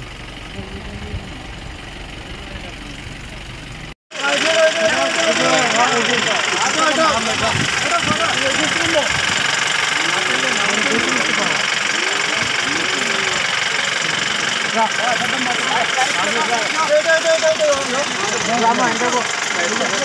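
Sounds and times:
people talking over one another: 0.5 - 20.0.

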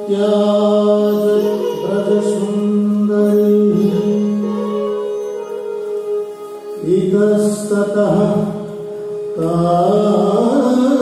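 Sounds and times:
voice chanting devotional song: 0.0 - 5.1, 6.8 - 11.0.

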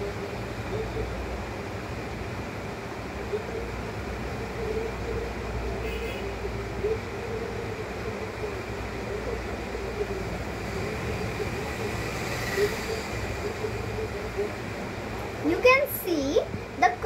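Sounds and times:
background rumble and hiss: 0.0 - 17.0.

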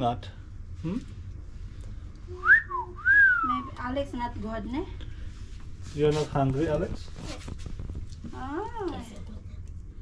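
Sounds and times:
person whistling: 2.3 - 3.7.

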